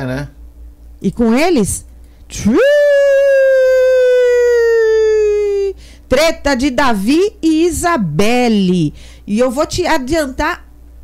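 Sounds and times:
woman holding a long vowel: 2.3s - 5.8s.

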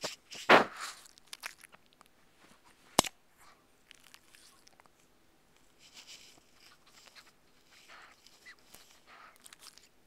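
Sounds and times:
small crackles: 0.0s - 10.0s.

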